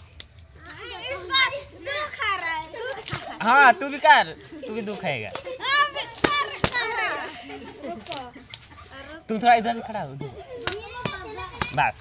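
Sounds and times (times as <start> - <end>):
children calling out and chattering: 0.4 - 12.0.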